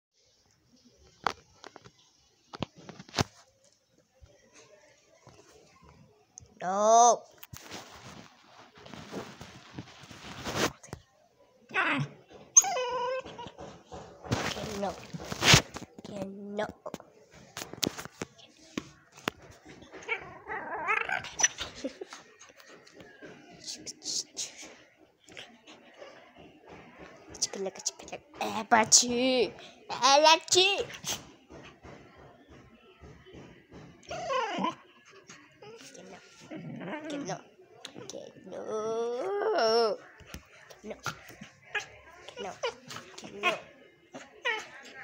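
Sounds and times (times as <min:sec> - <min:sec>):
dog whining: 0:11.8 - 0:13.8, 0:34.0 - 0:34.9.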